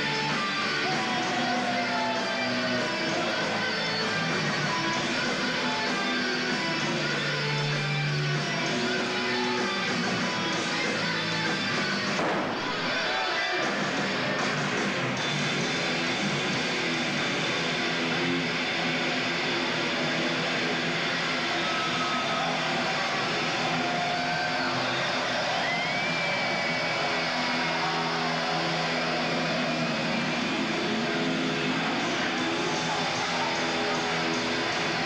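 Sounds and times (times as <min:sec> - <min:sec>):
arena crowd noise: 0:00.0 - 0:35.0
distorted electric guitar drone: 0:00.0 - 0:35.0.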